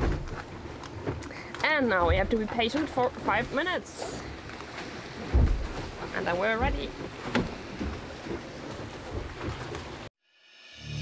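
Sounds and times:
water and wind rushing around hull: 0:00.0 - 0:10.1
soft low bumps: 0:01.8 - 0:10.1.

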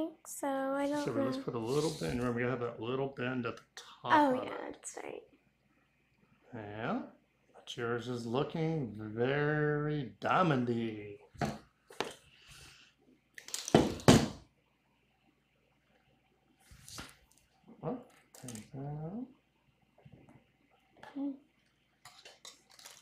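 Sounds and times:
murmured voice: 0:00.8 - 0:02.5
wire bending clicks and rustles: 0:18.1 - 0:18.8, 0:22.0 - 0:23.0.

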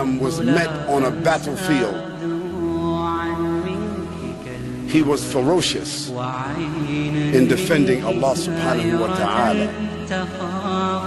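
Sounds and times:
long chanted vocal note: 0:00.0 - 0:11.0.

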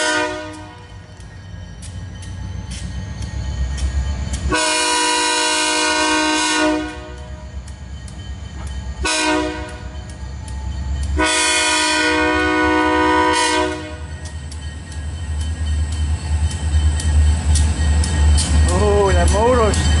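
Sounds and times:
locomotive air horn blasts: 0:00.0 - 0:00.8, 0:04.5 - 0:07.4, 0:09.0 - 0:10.0, 0:11.2 - 0:14.1.

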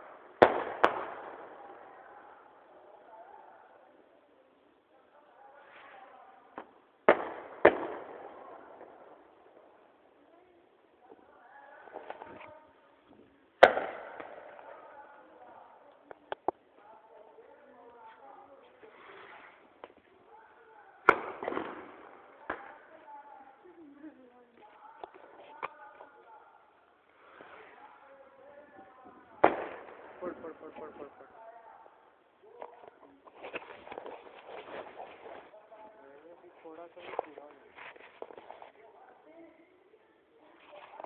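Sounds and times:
sharp echoing bangs: 0:00.3 - 0:01.7, 0:07.0 - 0:09.6, 0:13.6 - 0:14.9, 0:21.0 - 0:22.9, 0:29.4 - 0:31.0
crackling noise: 0:04.4 - 0:41.0
faint background voices: 0:08.0 - 0:41.0.

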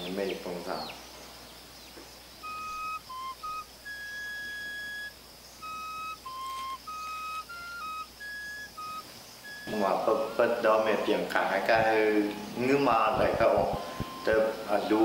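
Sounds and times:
solo flute melody: 0:02.4 - 0:11.0, 0:13.5 - 0:15.0.

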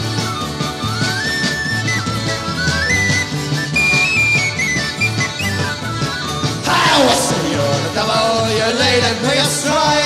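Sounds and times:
tin whistle folk melody: 0:00.0 - 0:08.2
drums and bass: 0:00.0 - 0:10.0.

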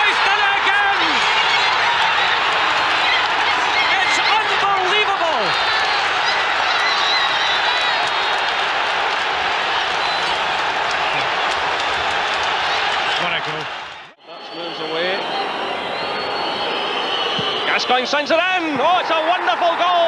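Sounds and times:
stadium crowd cheering and shouting: 0:00.0 - 0:20.0
whistles sliding down in pitch: 0:14.4 - 0:17.9.

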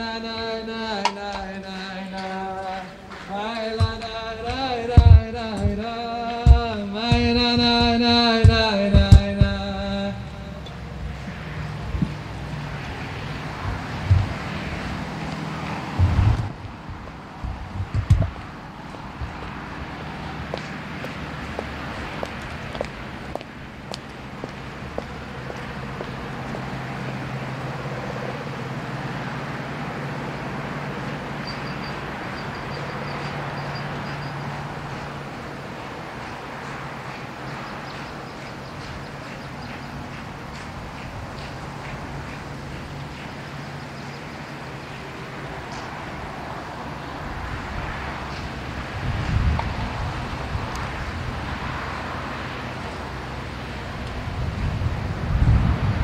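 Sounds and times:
steady low hum: 0:00.0 - 0:51.5
wind buffeting microphone: 0:00.0 - 0:56.0.

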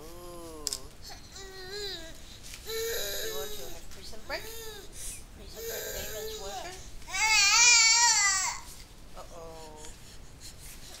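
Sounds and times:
infant whining: 0:00.0 - 0:08.7.

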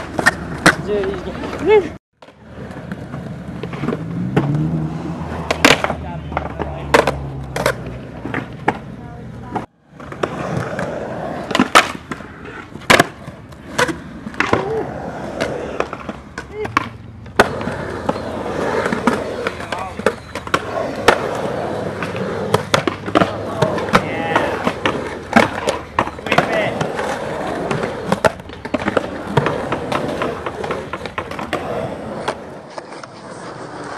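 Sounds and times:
skateboard pops and clacks: 0:00.0 - 0:04.7, 0:05.4 - 0:08.8, 0:09.5 - 0:33.9
skateboard wheels on concrete: 0:00.0 - 0:33.9.

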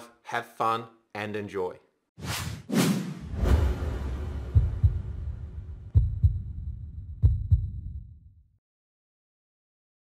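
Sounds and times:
heartbeat thumps: 0:04.4 - 0:08.2.

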